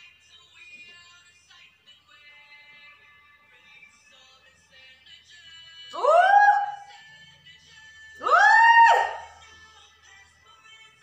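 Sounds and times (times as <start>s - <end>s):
faint pop music: 0.0s - 11.0s
woman singing high note: 5.9s - 7.0s, 8.2s - 9.4s.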